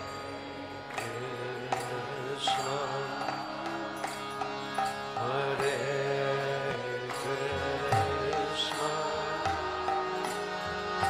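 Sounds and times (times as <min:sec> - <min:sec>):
held drone: 0:00.0 - 0:11.0
sharp percussion strikes: 0:00.9 - 0:06.2, 0:07.1 - 0:11.0.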